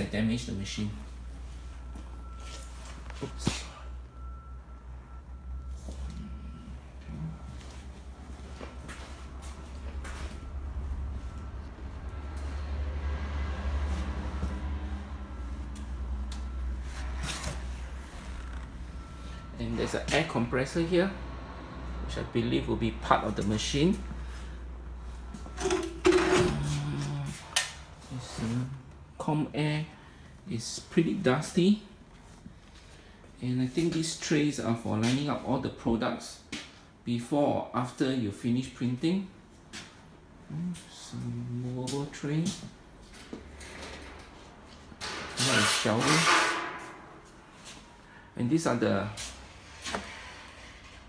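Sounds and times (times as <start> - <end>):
metal tray scraping on rack: 45.0 - 47.6.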